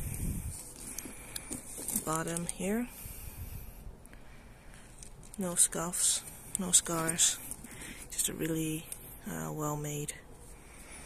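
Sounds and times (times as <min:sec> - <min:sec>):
phone microphone handling rumble: 0:00.0 - 0:02.8.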